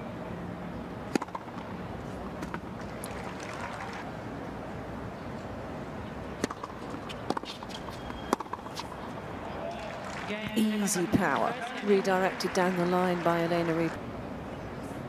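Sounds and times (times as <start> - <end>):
low stadium hum: 0.0 - 15.0
tennis rackets hitting ball: 1.1 - 3.9, 6.4 - 13.9.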